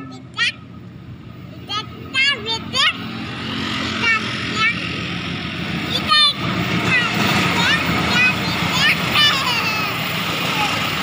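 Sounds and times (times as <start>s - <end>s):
diesel locomotive engine rumble: 0.0s - 11.0s
motorcycle passing: 0.0s - 11.0s.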